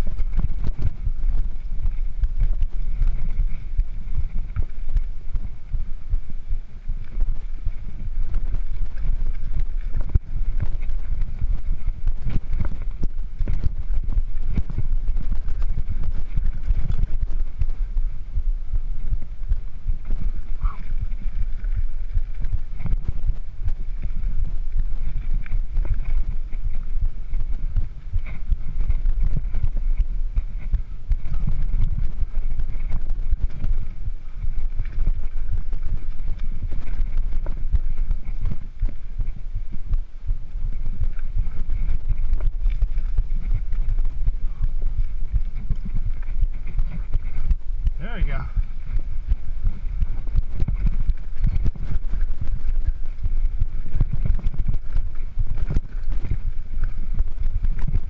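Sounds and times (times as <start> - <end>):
wind buffeting microphone: 0.0 - 58.0.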